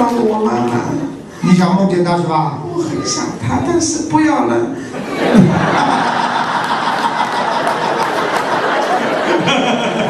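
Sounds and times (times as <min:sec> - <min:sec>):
audience laughing: 0:04.9 - 0:10.0
man laughing: 0:05.2 - 0:08.1, 0:08.8 - 0:10.0.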